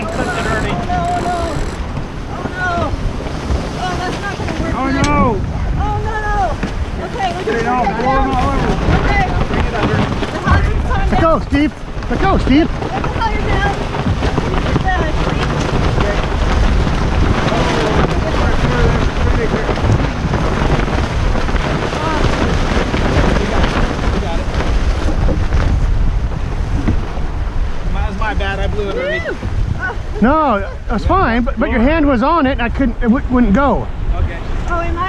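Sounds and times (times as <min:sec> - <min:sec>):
sailcloth rustling and flapping: 0:00.0 - 0:35.0
water rushing past hull: 0:00.0 - 0:35.0
wind buffeting microphone: 0:00.0 - 0:35.0.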